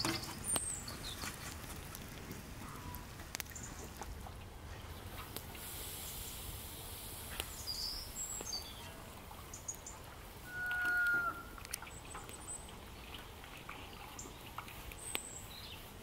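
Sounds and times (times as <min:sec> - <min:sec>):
small birds chirping: 0:00.0 - 0:04.0, 0:04.6 - 0:16.0.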